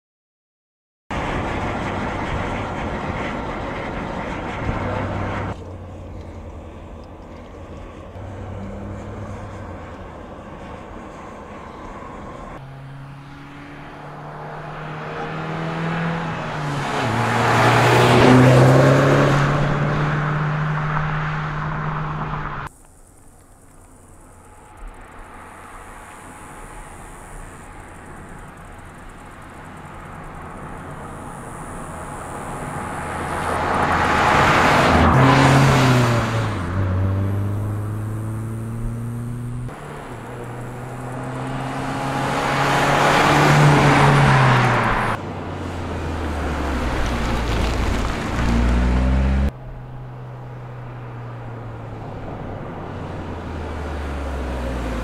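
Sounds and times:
car driving past: 8.0s - 22.7s, 24.2s - 55.0s.

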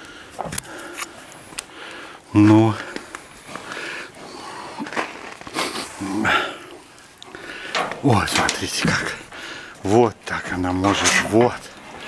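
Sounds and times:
bear low vocal sound: 4.1s - 9.8s.

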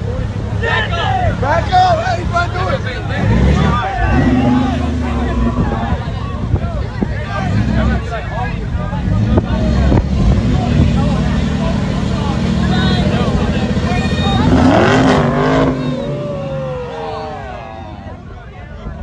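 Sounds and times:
truck engine revving: 0.0s - 6.6s, 7.2s - 18.2s
crowd chatter: 0.0s - 19.0s.

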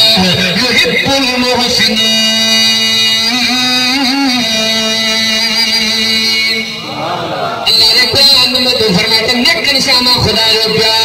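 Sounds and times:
man singing a long note: 0.0s - 7.0s.

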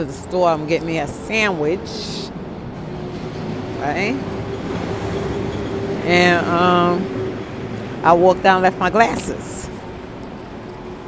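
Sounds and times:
rumbling outdoor background: 0.0s - 11.0s.

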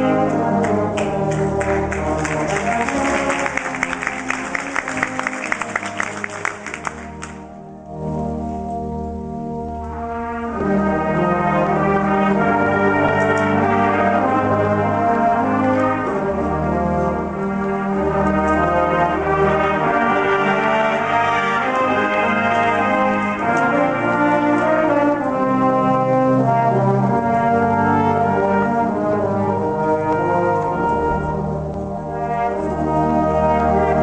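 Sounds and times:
brass ensemble playing chords: 0.0s - 34.0s.

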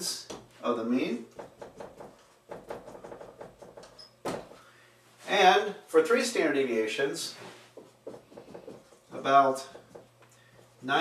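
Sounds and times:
marker writing on whiteboard: 1.3s - 4.1s, 7.6s - 11.0s.

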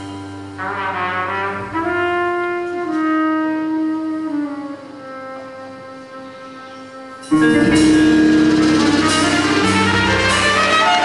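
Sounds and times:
sustained piano chords: 0.0s - 11.0s
jazz trumpet holding long notes: 0.4s - 11.0s.

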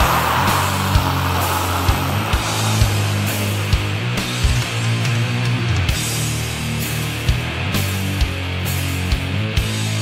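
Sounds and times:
distorted guitar and bass chords: 0.0s - 10.0s.

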